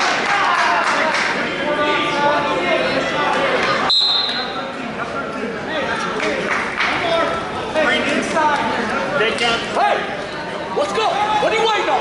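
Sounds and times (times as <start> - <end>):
spectators talking and calling out: 0.0 - 12.0
short high whistle-like tone: 3.9 - 4.5.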